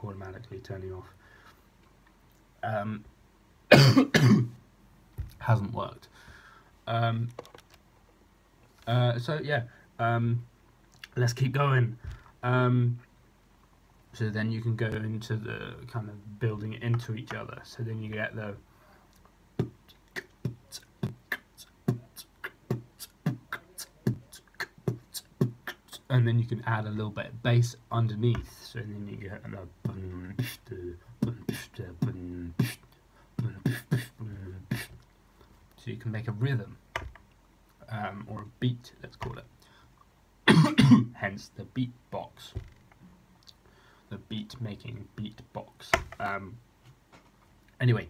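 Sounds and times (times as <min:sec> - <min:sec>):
man coughing: 0:03.7 - 0:04.6, 0:40.5 - 0:41.2
beatboxing: 0:19.6 - 0:26.3, 0:29.8 - 0:35.0.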